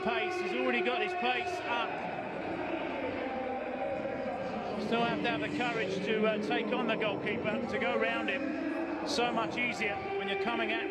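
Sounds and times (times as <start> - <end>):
stadium crowd din: 0.0 - 10.9.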